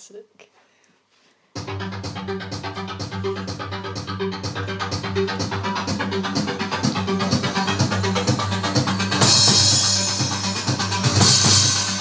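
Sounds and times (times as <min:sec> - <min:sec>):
electronic drum beat: 0:01.6 - 0:12.0
rave track bass line: 0:01.6 - 0:12.0.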